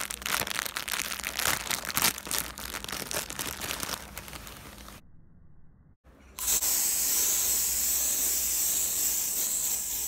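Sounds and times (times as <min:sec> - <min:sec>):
garment steamer hissing: 0:06.4 - 0:10.0.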